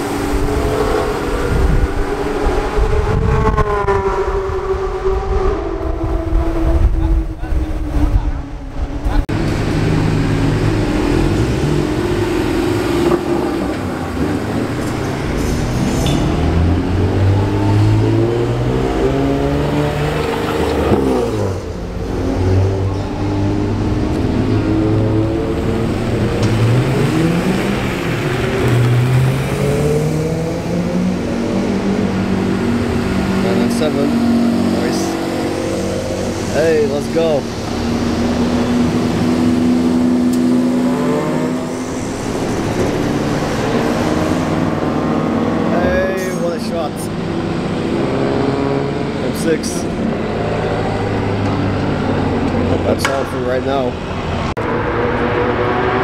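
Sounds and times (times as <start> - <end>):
sports car engines rolling by: 0.0 - 56.0
sports car pulling away: 0.0 - 56.0.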